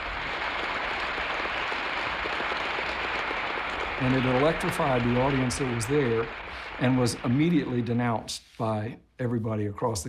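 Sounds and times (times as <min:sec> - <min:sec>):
large audience applauding: 0:00.0 - 0:08.2.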